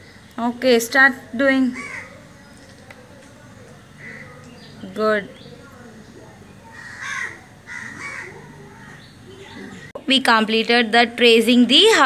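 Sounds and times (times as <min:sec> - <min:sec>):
bird calling harshly: 0:01.7 - 0:02.2, 0:06.7 - 0:09.8.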